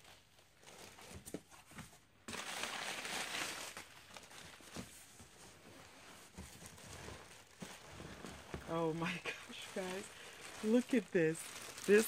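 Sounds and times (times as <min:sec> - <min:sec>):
plastic packaging crinkling: 0:00.0 - 0:01.6, 0:02.2 - 0:12.0.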